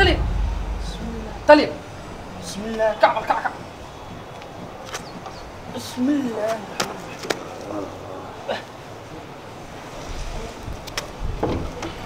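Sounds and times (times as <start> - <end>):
wind buffeting microphone: 0.0 - 5.7.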